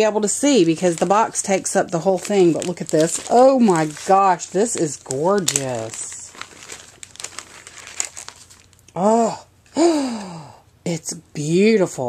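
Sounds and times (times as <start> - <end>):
plastic sleeve crinkling: 0.0 - 8.9.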